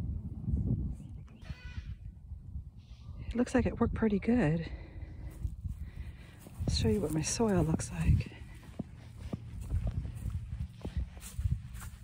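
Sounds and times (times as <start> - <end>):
high-pitched animal call: 1.4 - 2.1.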